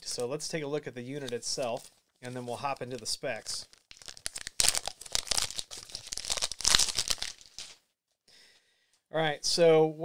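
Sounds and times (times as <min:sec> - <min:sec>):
packaging crinkling and rustling: 0:01.2 - 0:07.8.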